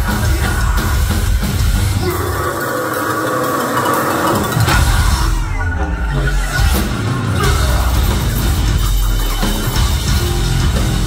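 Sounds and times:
full band crashing in: 0.0 - 11.0.

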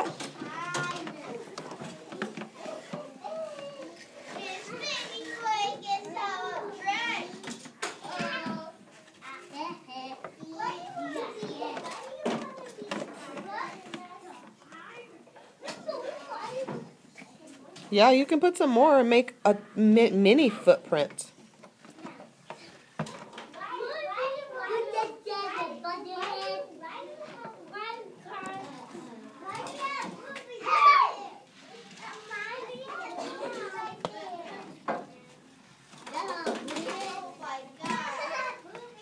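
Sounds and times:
children chattering: 0.0 - 39.0.

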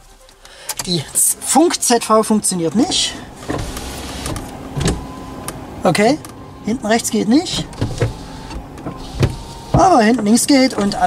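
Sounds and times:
electric window motor: 3.1 - 11.0.

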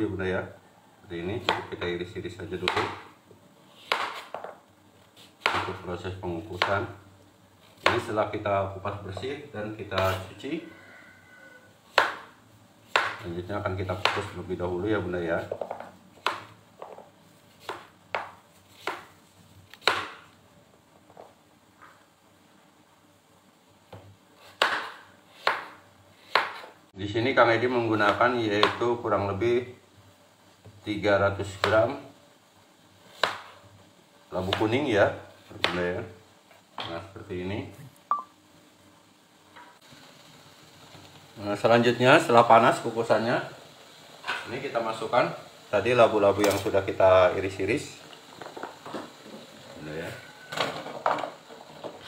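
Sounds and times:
knife chopping on cutting board: 3.8 - 4.5, 5.4 - 5.8, 11.9 - 12.3, 12.9 - 13.2, 17.6 - 19.1, 19.8 - 20.2, 24.5 - 26.7, 33.2 - 33.6.

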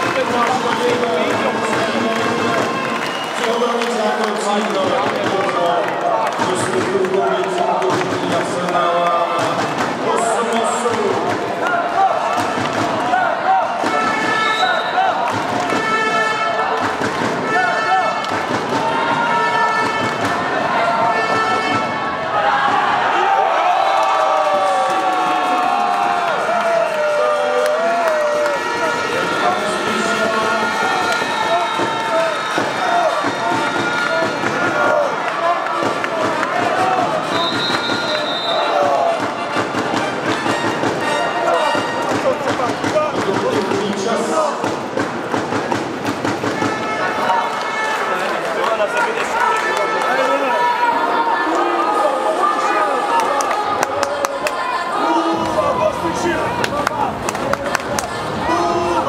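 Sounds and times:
crowd cheering and chanting: 0.0 - 59.0.

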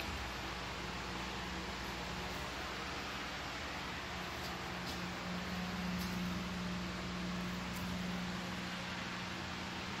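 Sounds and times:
fan running: 0.0 - 10.0.

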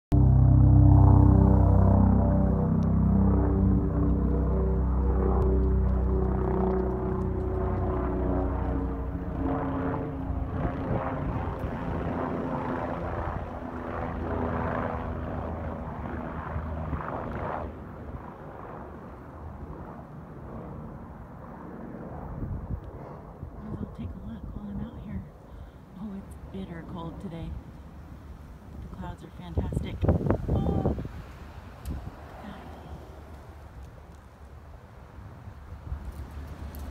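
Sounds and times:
ambient music chords: 0.1 - 10.7
helicopter flying overhead: 0.1 - 36.9.

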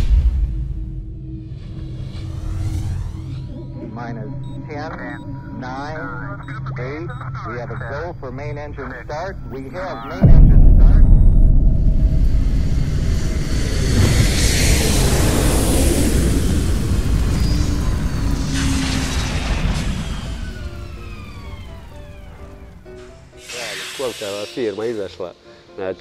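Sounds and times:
rising whoosh: 0.0 - 3.5, 10.2 - 23.6
rocket engine roar: 0.0 - 3.5, 7.5 - 24.2
falling whistling tones: 12.2 - 25.0
background music: 20.6 - 26.0.

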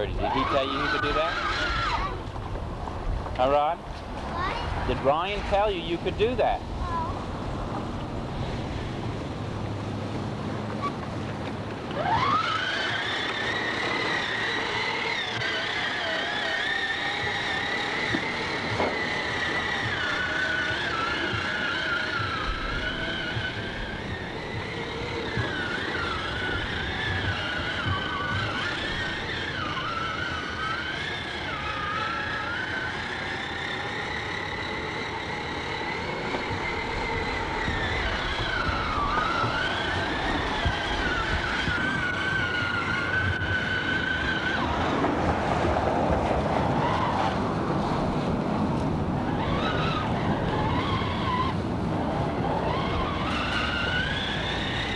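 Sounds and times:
toy car electric motor whining: 0.0 - 2.5, 3.3 - 7.1, 11.8 - 45.2, 48.9 - 54.9.

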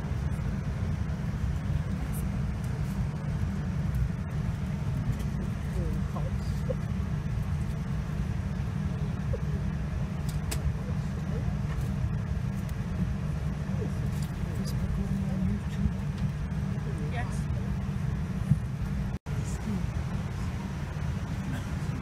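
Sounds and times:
airliner cabin rumble: 0.0 - 22.0
murmur of passengers' voices: 0.0 - 22.0.

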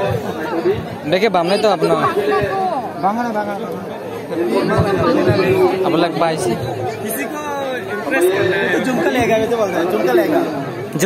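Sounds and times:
crowd chatter: 0.0 - 11.0
people talking: 0.0 - 11.0.

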